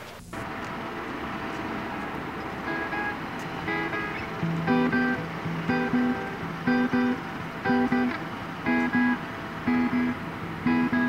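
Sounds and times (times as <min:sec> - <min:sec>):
soft background music wash: 0:00.2 - 0:11.0
picked guitar notes: 0:00.4 - 0:11.0.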